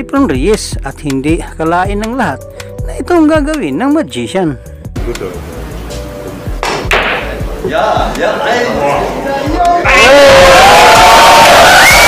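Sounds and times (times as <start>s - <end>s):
faint background music: 0.0s - 12.0s
pool cue striking ball: 6.6s - 7.4s.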